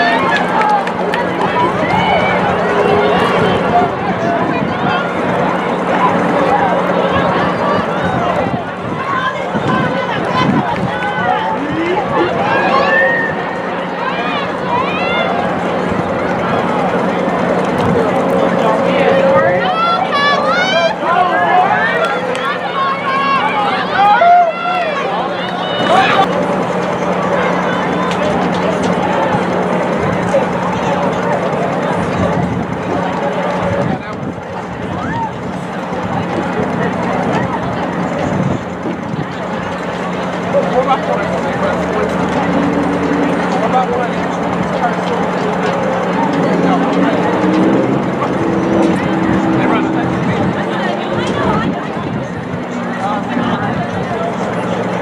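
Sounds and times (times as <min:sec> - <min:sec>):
higher-pitched voices: 0:00.0 - 0:55.0
young voices chattering: 0:00.0 - 0:55.0.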